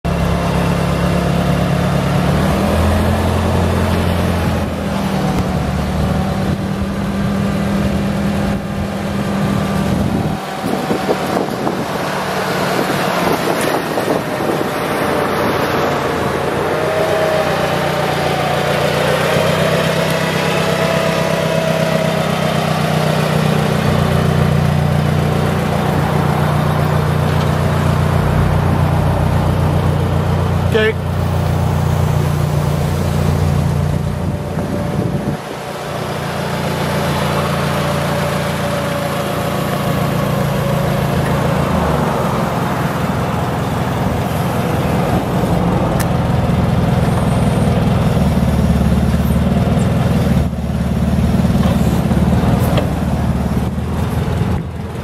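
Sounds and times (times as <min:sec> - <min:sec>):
forklift engine running: 0:00.0 - 0:55.0.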